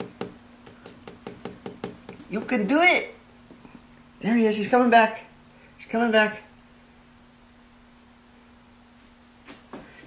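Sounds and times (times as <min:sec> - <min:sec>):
fingertip tapping on glass: 0:00.0 - 0:02.2.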